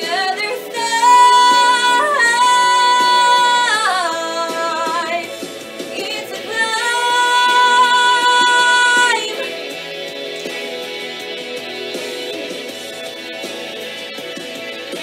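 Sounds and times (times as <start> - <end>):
woman singing: 0.0 - 9.6.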